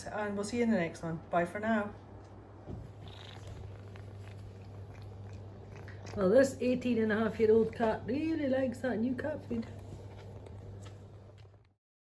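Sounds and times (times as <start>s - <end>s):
low hum: 1.9s - 11.8s
cat eating: 2.8s - 11.8s.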